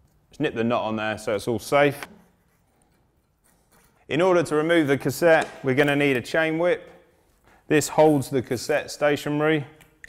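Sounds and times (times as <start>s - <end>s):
person speaking: 4.0s - 9.8s.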